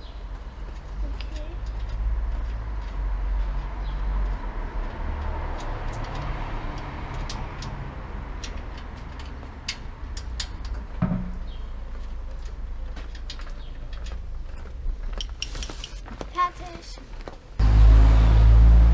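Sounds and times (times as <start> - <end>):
low traffic rumble: 0.0 - 18.9
vehicle passing: 1.9 - 10.2, 17.6 - 18.9.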